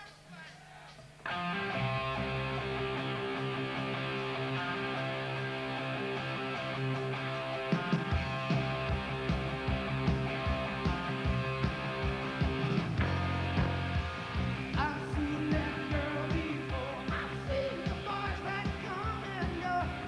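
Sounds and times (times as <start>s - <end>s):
electric guitar chord ringing: 1.3s - 14.7s
drum hits: 7.8s - 19.7s.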